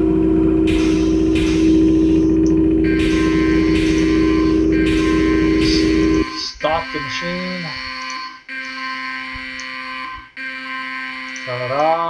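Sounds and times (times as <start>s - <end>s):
conveyor machinery hum and rumble: 0.0s - 7.2s
steady high alarm tone: 0.0s - 12.0s.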